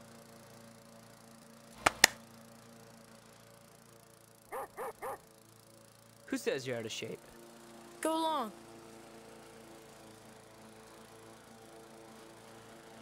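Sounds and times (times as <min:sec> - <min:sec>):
dog barking: 0:04.5 - 0:05.2.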